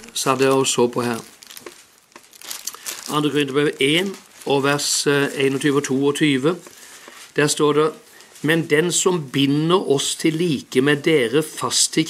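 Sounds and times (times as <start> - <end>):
thin pages rustling: 0.0 - 7.4.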